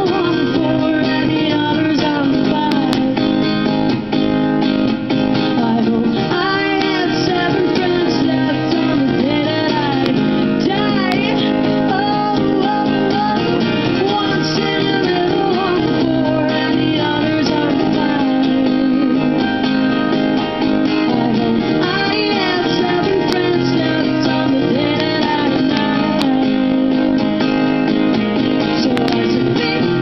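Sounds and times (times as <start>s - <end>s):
woman singing: 0.0s - 3.6s, 5.5s - 19.8s, 20.8s - 27.6s, 28.4s - 30.0s
acoustic guitars: 0.0s - 30.0s.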